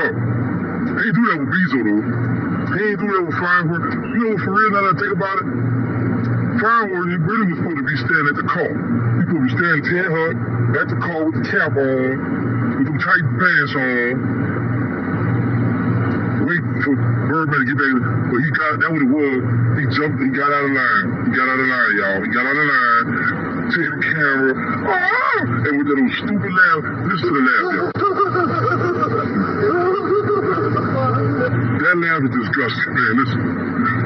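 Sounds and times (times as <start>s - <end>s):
steady low hum: 0.0s - 34.0s
man laughing: 27.2s - 31.6s.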